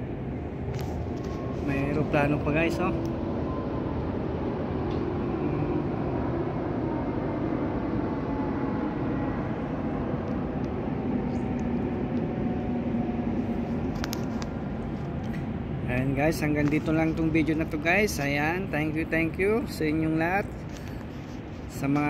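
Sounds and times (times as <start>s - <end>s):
airplane engine drone: 0.0s - 22.0s.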